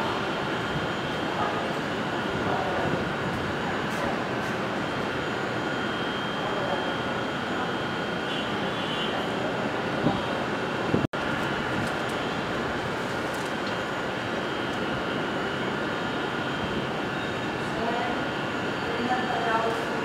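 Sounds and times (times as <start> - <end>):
distant city traffic hum: 0.0 - 20.0.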